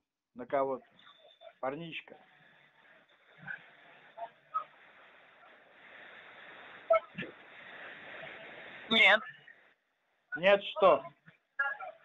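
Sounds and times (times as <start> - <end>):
faint distant sounds: 0.4 - 12.0.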